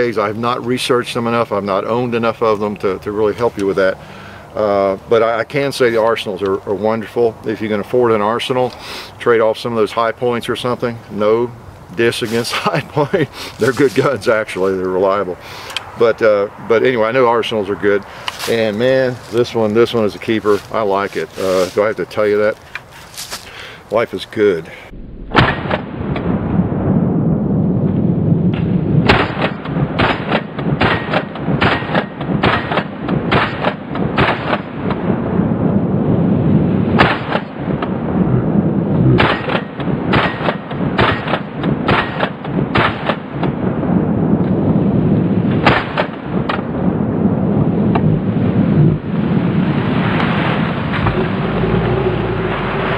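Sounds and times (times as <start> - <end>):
rolling rumble: 46.2 - 52.9.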